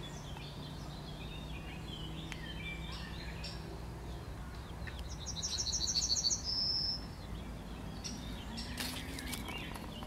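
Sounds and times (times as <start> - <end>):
bird song: 0.0 - 10.0.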